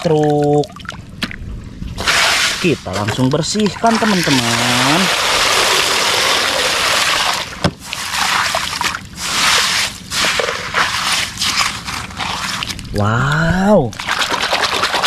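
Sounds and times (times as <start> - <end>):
water splashing and sloshing: 0.0 - 15.0.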